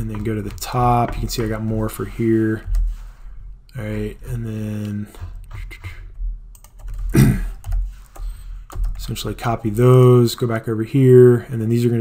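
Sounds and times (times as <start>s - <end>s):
computer keyboard clicking: 6.6s - 9.2s.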